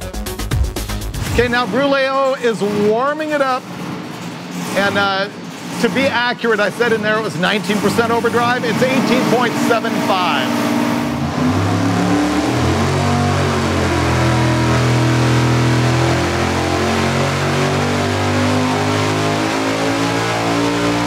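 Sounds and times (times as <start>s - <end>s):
supercharged engine revving: 0.8s - 21.0s.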